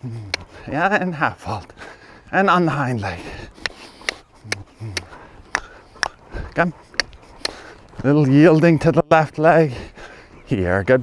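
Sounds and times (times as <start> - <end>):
man speaking: 0.0 - 3.6, 4.4 - 5.2, 6.4 - 7.0, 8.0 - 11.0
horse trotting: 0.0 - 11.0.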